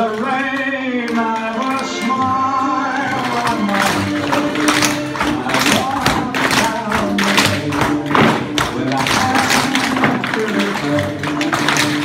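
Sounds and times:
recorded music: 0.0 - 12.0
tap shoes on wooden floor: 3.2 - 12.0.

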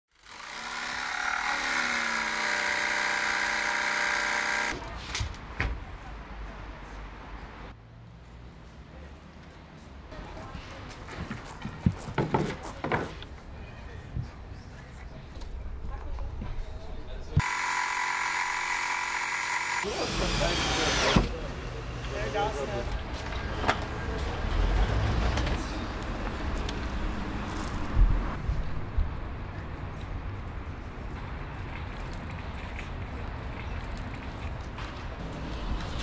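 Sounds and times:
track saw motor whine: 0.2 - 4.7, 17.4 - 21.2.

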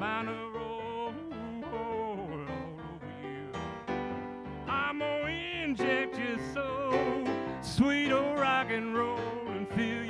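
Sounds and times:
man singing into a microphone: 0.0 - 3.8, 4.6 - 10.0
electronic keyboard accompaniment: 0.0 - 10.0.

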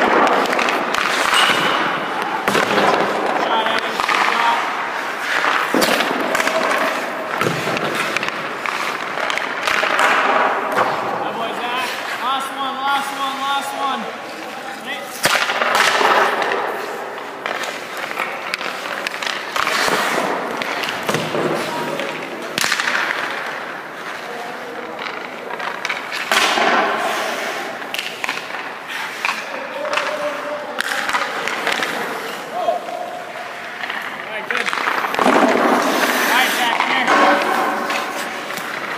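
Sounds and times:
hockey sticks and pucks clacking: 0.0 - 38.9
skates scraping on ice: 0.0 - 38.9.

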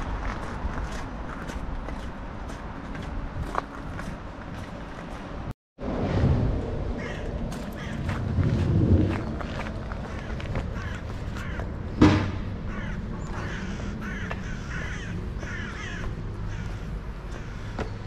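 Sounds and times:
low outdoor rumble: 0.0 - 18.0
crows cawing: 7.0 - 8.2, 9.4 - 11.8, 12.6 - 17.9
sharp thump: 12.0 - 12.5.

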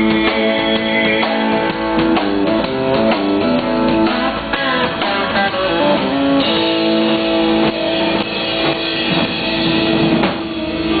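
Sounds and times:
country band playing: 0.0 - 11.0
drum hits: 0.0 - 11.0.

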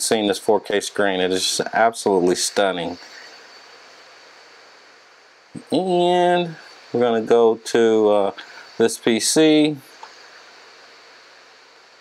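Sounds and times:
room tone hiss: 0.0 - 12.0.

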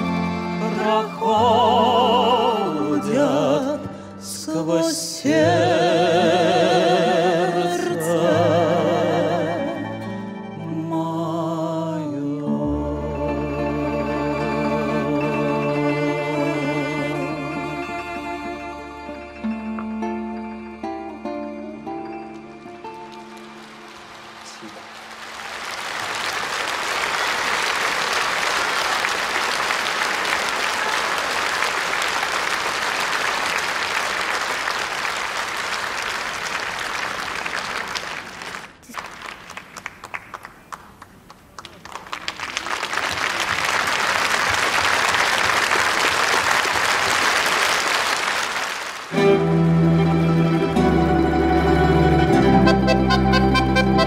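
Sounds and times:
plucked string music: 12.5 - 24.6, 49.2 - 54.0
audience applauding: 22.3 - 54.0.

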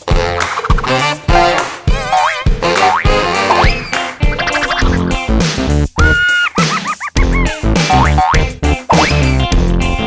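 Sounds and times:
playful background music: 0.0 - 10.0.

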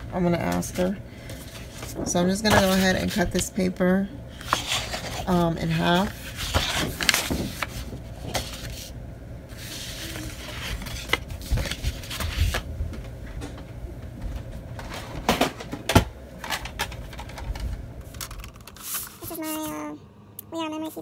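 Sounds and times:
paper rustling and sliding: 4.4 - 5.4, 6.0 - 12.6, 18.2 - 19.8.

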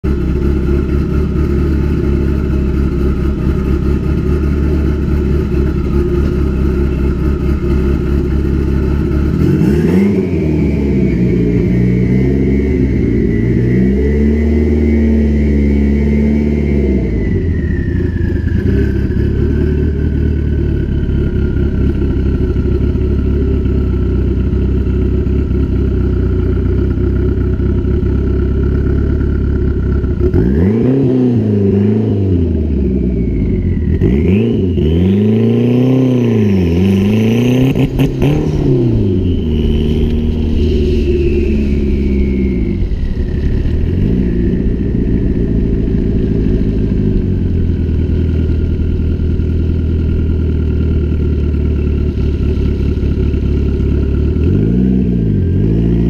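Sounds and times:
car engine idling and revving: 0.0 - 56.0
engine whine: 0.0 - 56.0.

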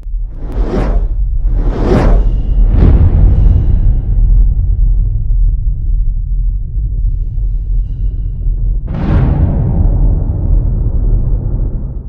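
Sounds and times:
deep sustained rumble: 0.0 - 12.0
whoosh and hit: 0.3 - 4.8.

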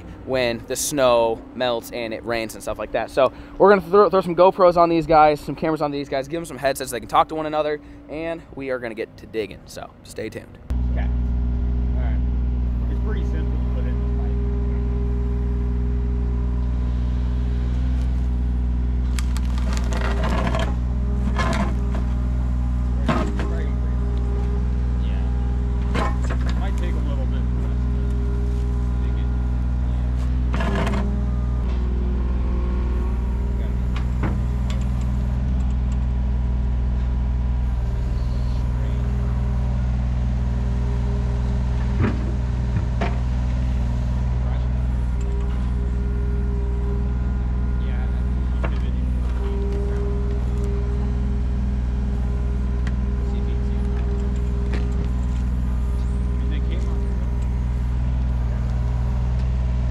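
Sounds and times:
excavator diesel engine running: 0.0 - 59.9
bucket scraping and clanking: 19.2 - 22.3, 23.0 - 23.8, 25.8 - 26.8.

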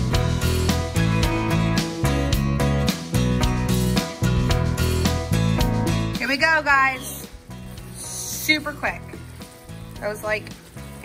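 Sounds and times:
background music: 0.0 - 11.0
stir fry sizzling in skillet: 3.0 - 11.0
person's voice: 8.0 - 9.2.

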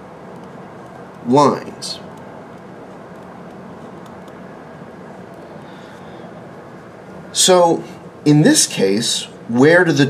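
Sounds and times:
room hiss and hum: 0.0 - 10.0.

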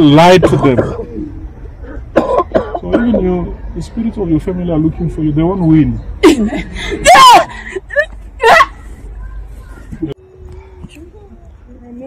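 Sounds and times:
person coughing: 0.4 - 1.1, 2.1 - 3.2.

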